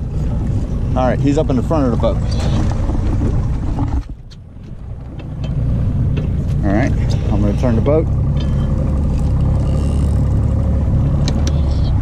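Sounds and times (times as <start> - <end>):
boat engine rumble: 0.0 - 12.0.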